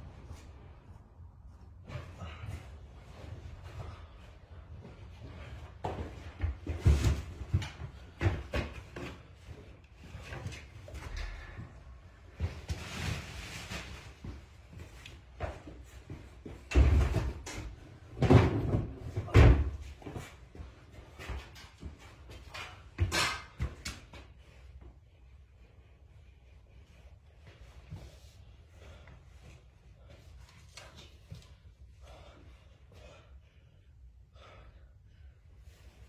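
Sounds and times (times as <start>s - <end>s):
thumps and scrapes of person climbing: 0.0s - 33.7s, 35.4s - 36.0s.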